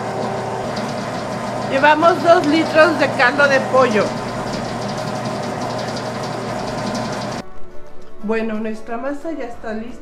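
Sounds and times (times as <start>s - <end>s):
stand mixer motor running: 0.0s - 7.4s.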